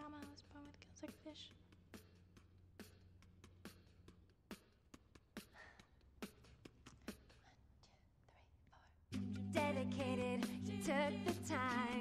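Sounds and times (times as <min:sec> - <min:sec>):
faint whisper: 0:07.1 - 0:09.1
woman singing: 0:09.5 - 0:12.0.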